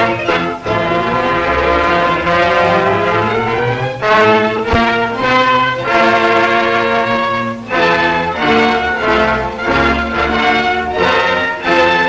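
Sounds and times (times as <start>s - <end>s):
brass-led orchestral music: 0.0s - 12.0s.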